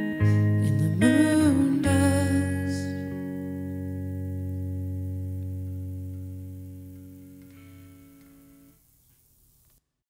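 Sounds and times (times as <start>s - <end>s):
electric guitar chord ringing: 0.0s - 8.9s
faint hiss: 0.0s - 9.8s.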